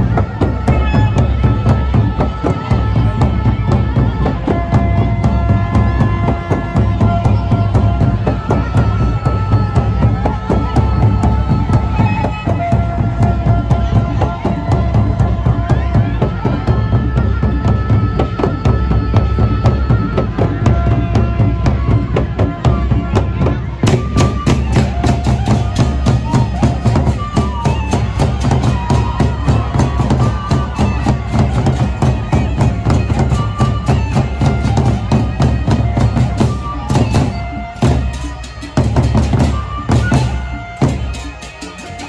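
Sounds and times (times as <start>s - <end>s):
barrel drums beaten with sticks: 0.0s - 42.0s
cymbals clashing: 28.4s - 42.0s.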